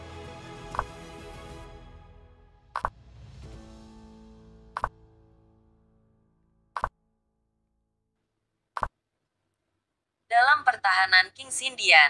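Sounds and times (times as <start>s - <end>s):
soft background music: 0.0s - 6.9s
sharp software clicks: 4.8s - 5.0s, 6.8s - 7.0s, 8.8s - 9.0s.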